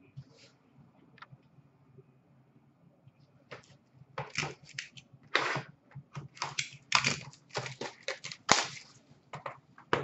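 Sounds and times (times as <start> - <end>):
cards clicking and slapping on glass: 6.2 - 8.9.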